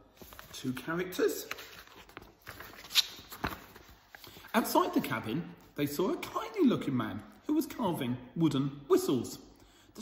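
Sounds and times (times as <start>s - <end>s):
magazine pages rustling: 0.1s - 5.8s.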